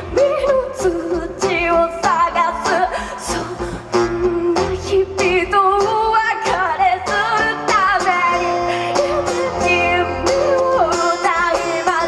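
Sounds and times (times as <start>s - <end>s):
strummed acoustic guitar: 0.0s - 12.0s
woman singing: 0.0s - 12.0s.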